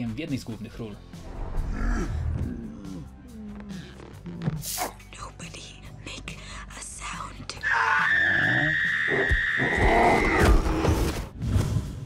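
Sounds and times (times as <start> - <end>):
breathy whispering voice: 2.0 - 7.6.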